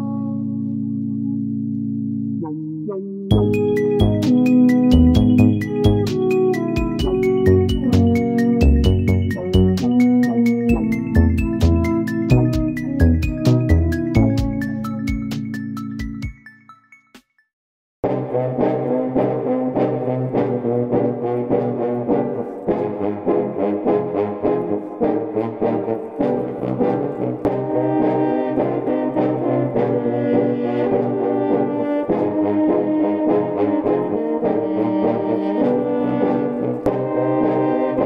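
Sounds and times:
brass ensemble playing: 0:02.4 - 0:15.7, 0:18.0 - 0:38.0.

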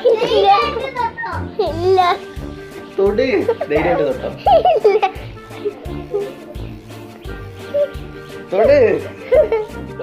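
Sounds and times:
child talking and laughing: 0:00.0 - 0:02.4, 0:03.5 - 0:06.7, 0:07.7 - 0:08.0, 0:09.1 - 0:10.0
music with low beat: 0:00.8 - 0:10.0.

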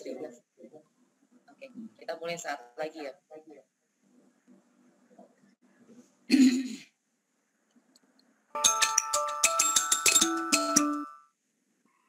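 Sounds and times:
person clearing throat: 0:06.3 - 0:06.9.

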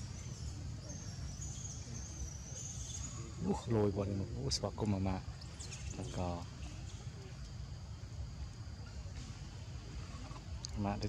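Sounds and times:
insects buzzing: 0:00.0 - 0:11.0.

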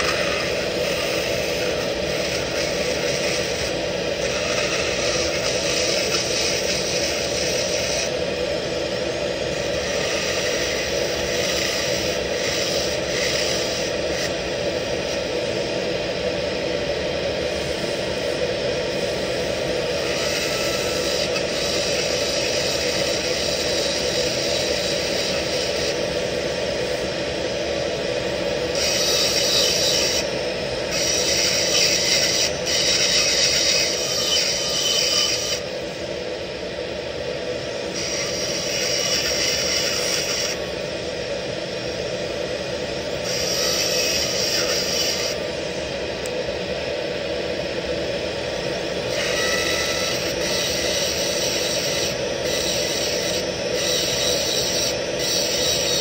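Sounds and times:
bur grinding metal: 0:00.0 - 0:08.2, 0:30.9 - 0:35.6.

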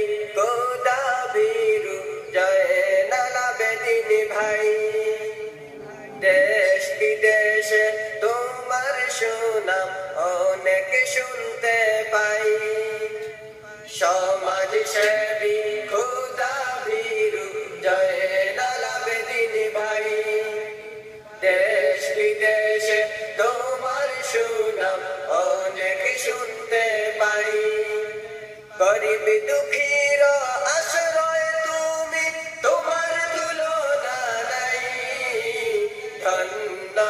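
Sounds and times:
man singing slow melody: 0:00.0 - 0:37.0.

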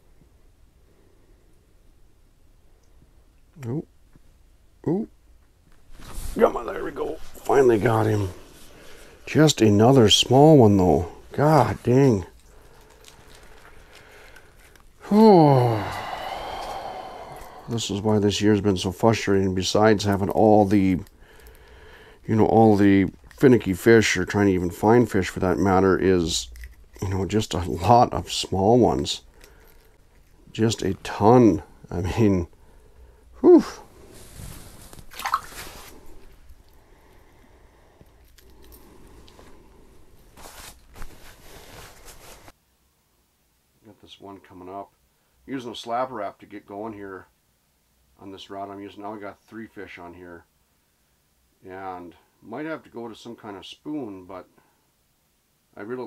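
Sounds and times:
fabric rustle: 0:05.8 - 0:09.4, 0:33.9 - 0:36.6, 0:39.1 - 0:42.6
man groaning sigh: 0:15.0 - 0:18.1, 0:33.4 - 0:33.9
wet squish of hands: 0:34.8 - 0:36.3.

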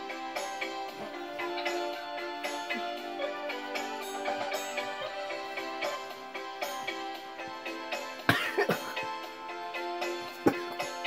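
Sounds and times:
music with held notes: 0:00.0 - 0:11.0
person coughing: 0:08.3 - 0:09.0, 0:10.3 - 0:10.8.

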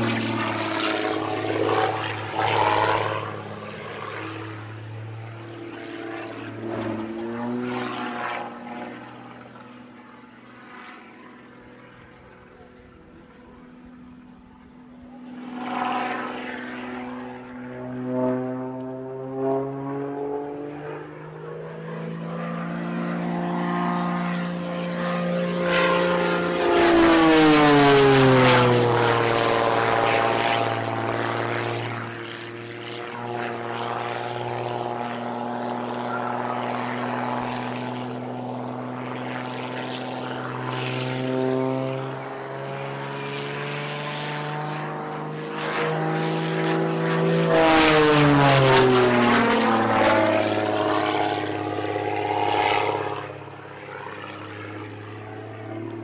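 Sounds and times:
propeller plane engine droning: 0:00.0 - 0:56.0.

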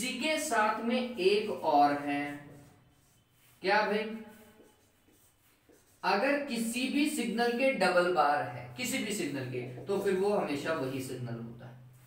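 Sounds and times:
marker pen on whiteboard: 0:00.0 - 0:12.0
person speaking: 0:00.0 - 0:12.0.

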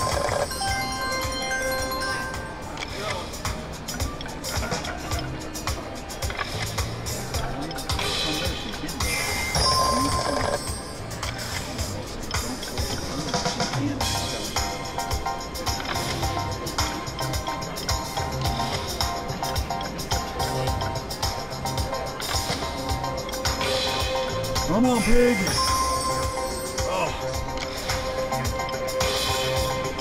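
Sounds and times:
slot machine clicking spin effects: 0:00.0 - 0:03.2, 0:09.0 - 0:12.8, 0:22.0 - 0:26.8
slot machine electronic music: 0:00.0 - 0:30.0.

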